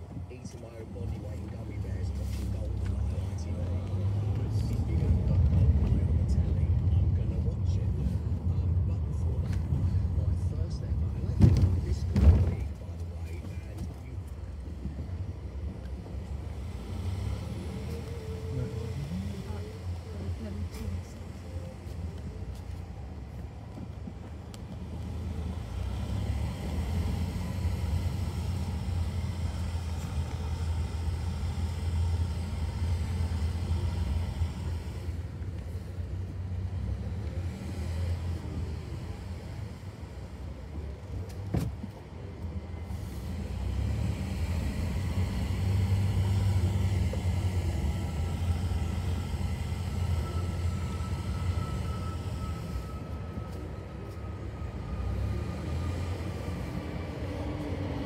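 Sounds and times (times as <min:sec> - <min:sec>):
car engine and tyre rumble: 0:00.0 - 0:58.0.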